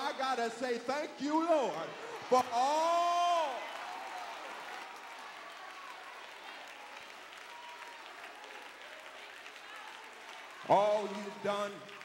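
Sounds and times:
congregation applauding: 1.4 - 12.0.

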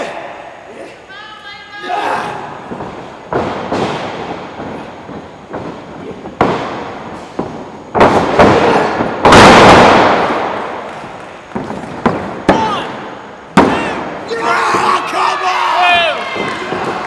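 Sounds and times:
wrestlers thudding on ring: 2.4 - 15.0, 16.0 - 17.0.

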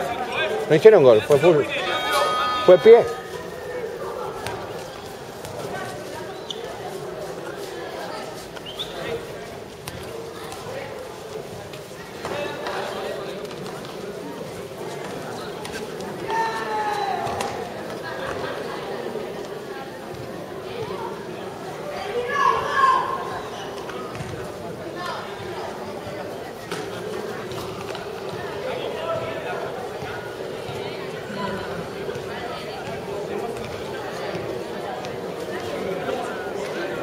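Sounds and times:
people talking and calling out: 0.0 - 37.0.

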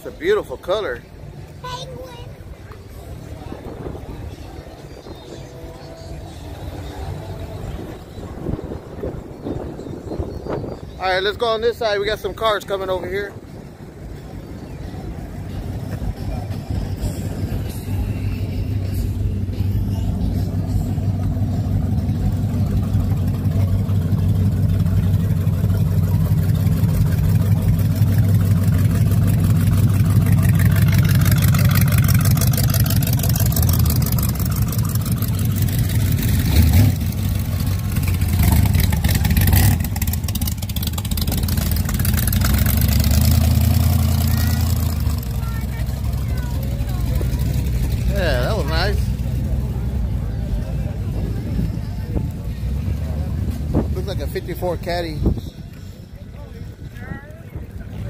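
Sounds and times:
car engines moving slowly past: 0.0 - 58.0
crowd talking: 0.0 - 58.0.

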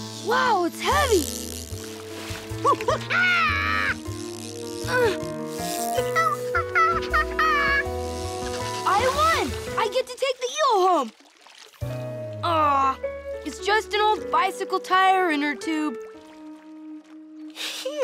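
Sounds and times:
cartoon background music: 0.0 - 1.8, 2.4 - 10.7, 11.8 - 18.0
cartoon monkey worried cries: 6.0 - 7.9.

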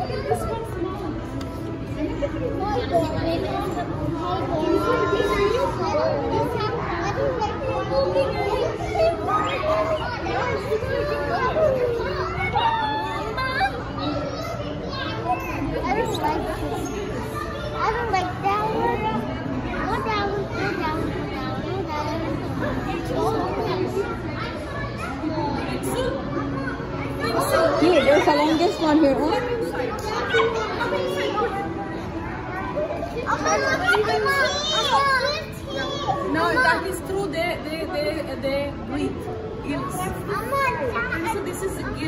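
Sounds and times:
children's voices: 0.0 - 42.0
people chattering: 0.0 - 42.0.

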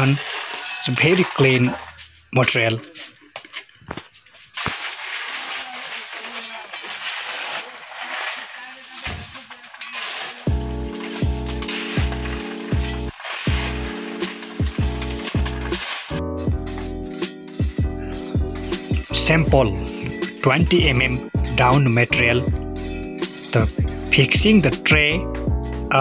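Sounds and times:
stones rattling in metal tray: 0.0 - 2.1, 3.5 - 22.1, 22.8 - 25.0
background music with steady beat: 10.5 - 26.0.

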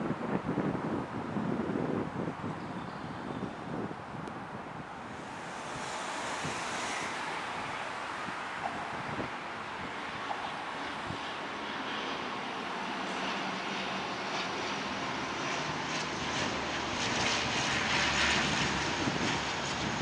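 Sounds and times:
turboprop airliner engines droning: 0.0 - 20.0.

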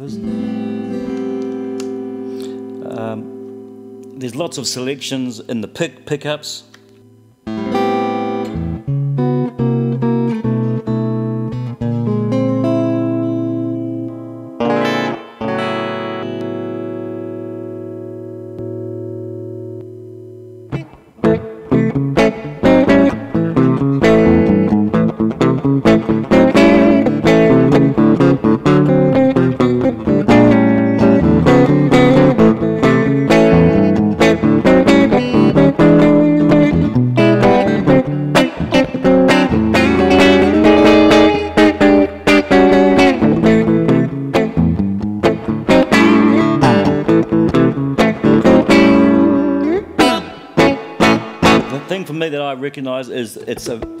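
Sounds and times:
clean electric guitar playing: 0.0 - 54.0.

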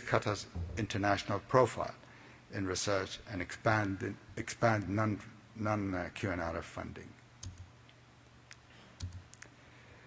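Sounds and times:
soft low thump: 0.6 - 1.0.

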